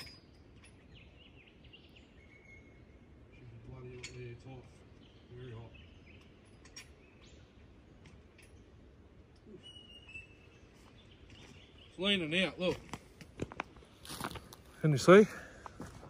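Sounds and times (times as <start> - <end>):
bird calling: 0.0 - 3.7, 9.4 - 12.8
forest background: 0.0 - 16.0.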